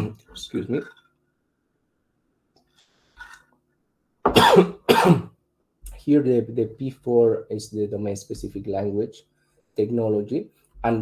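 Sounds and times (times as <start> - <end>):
man coughing: 4.3 - 5.4.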